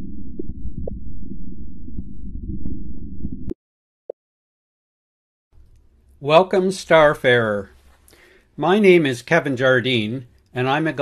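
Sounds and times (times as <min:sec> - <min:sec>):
faint clicks: 0:10.3 - 0:10.6.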